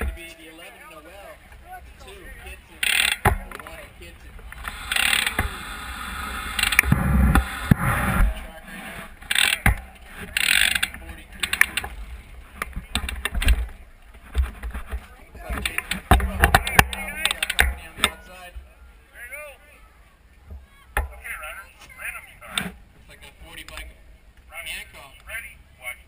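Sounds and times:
bicycle hub freewheel ratcheting: 2.8s - 3.3s, 4.6s - 7.8s, 9.2s - 11.8s.

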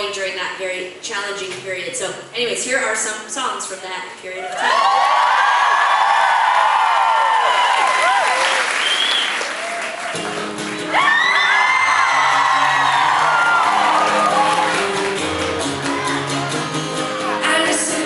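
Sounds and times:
crowd cheering and applauding: 4.5s - 18.0s
acoustic guitar playing: 10.1s - 18.0s.

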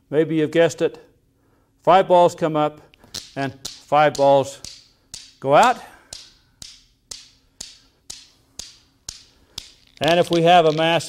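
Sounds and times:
steel balls clicking together: 3.0s - 11.0s.

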